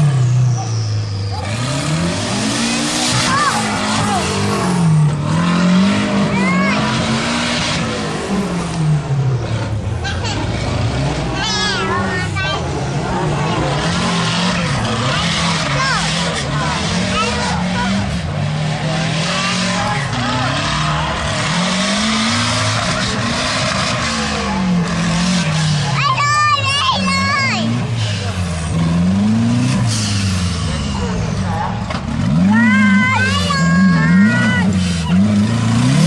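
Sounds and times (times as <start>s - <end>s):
truck engines revving: 0.0s - 36.0s.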